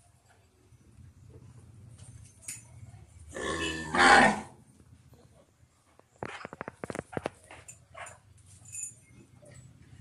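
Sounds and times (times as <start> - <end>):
cow mooing: 3.4 - 4.5.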